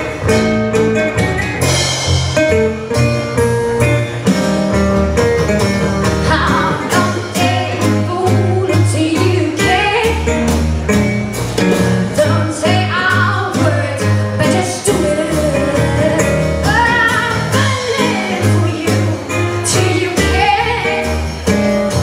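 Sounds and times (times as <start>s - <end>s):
blues band playing: 0.0s - 22.0s
woman singing: 6.2s - 10.5s, 12.2s - 21.6s.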